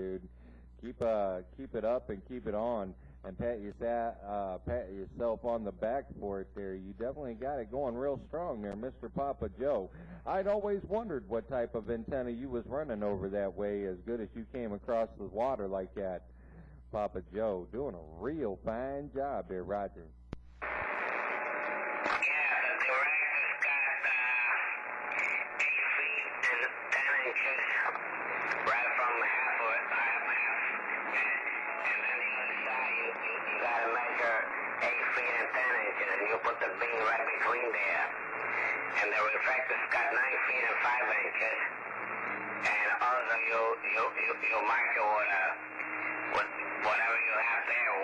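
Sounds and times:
man talking over radio: 0.0 - 16.2, 22.1 - 48.0
radio static hiss: 0.0 - 48.0.

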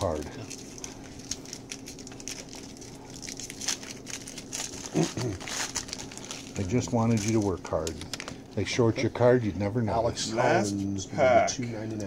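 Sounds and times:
cards and wrappers crinkling: 0.0 - 8.6
faint steady hum: 0.0 - 12.0.

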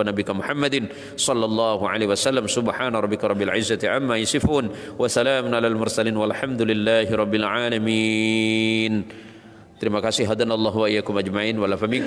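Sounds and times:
man chanting a prayer: 0.0 - 9.1.

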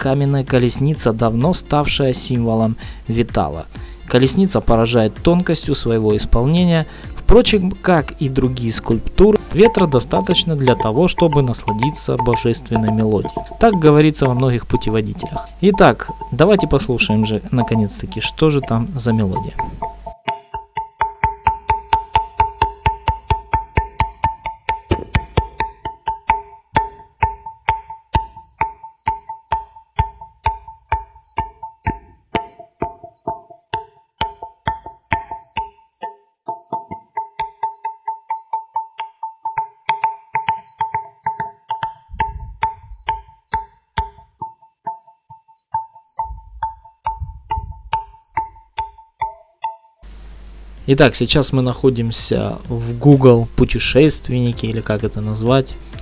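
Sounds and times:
stone pillars ringing when struck: 8.3 - 35.8.

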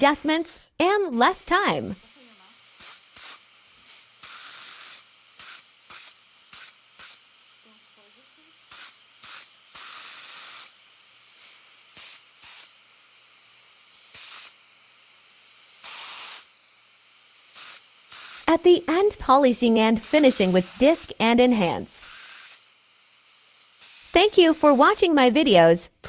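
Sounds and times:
dental equipment hissing air: 0.0 - 25.2.

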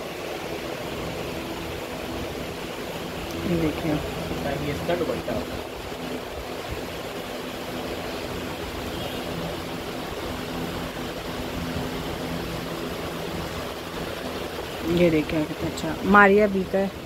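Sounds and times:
steady hissing noise: 0.0 - 17.0.

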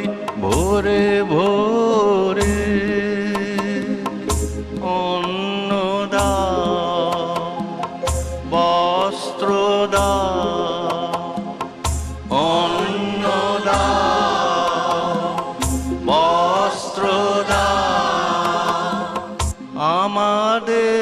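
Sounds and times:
instrumental accompaniment: 0.0 - 20.7
voices singing: 12.3 - 21.0.

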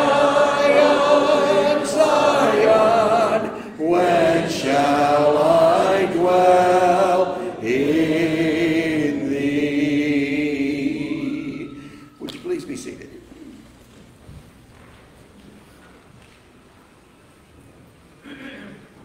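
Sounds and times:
congregation singing a hymn: 0.0 - 12.6.

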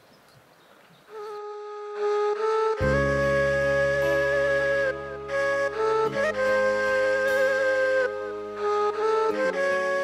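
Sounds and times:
flute-like background music: 1.1 - 10.0.

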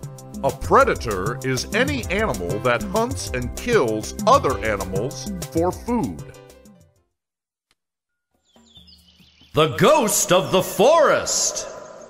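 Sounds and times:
high bird chirps: 8.4 - 12.0.

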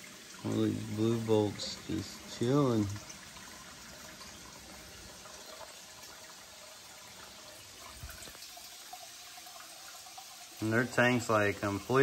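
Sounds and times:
water rushing from a hose: 0.0 - 12.0.

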